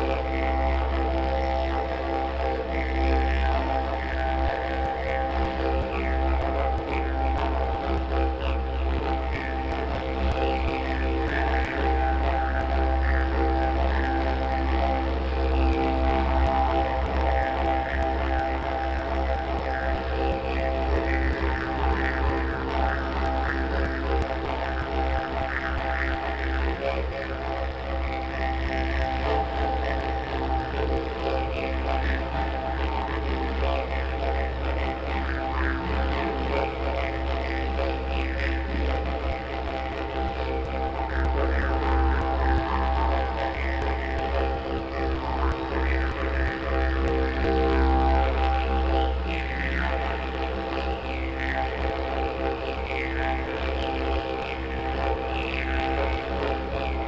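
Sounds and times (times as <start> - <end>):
didgeridoo drone: 0.0 - 57.0.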